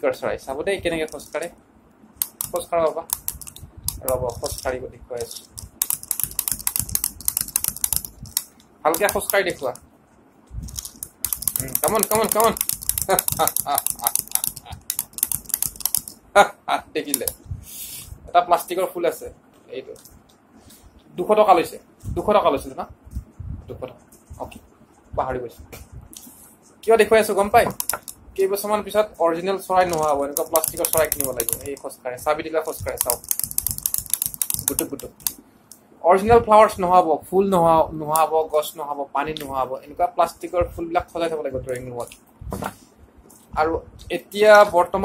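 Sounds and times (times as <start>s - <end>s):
plastic clicks and rustles: 10.6s - 16.2s, 29.8s - 31.9s.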